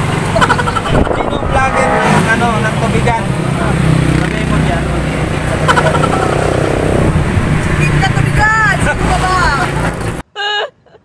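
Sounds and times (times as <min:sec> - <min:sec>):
vehicle engine humming: 0:00.0 - 0:10.2.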